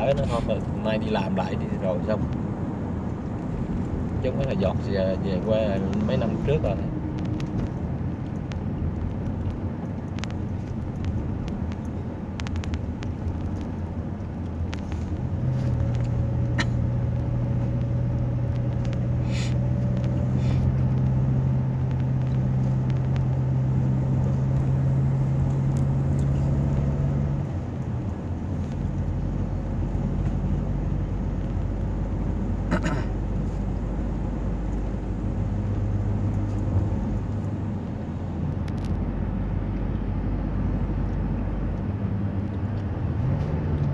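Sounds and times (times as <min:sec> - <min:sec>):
car road noise: 0:00.0 - 0:43.9
low engine hum: 0:00.0 - 0:43.9.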